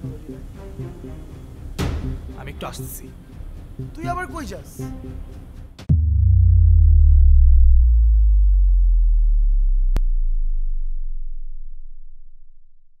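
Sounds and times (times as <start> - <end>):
deep synthesized bass tone sinking: 5.9 - 13.0.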